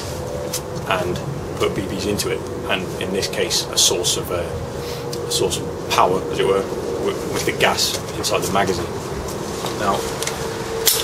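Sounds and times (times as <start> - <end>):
faint steady hum: 0.0 - 11.0
low background rumble: 0.0 - 11.0
man speaking: 0.8 - 9.0, 9.7 - 10.2.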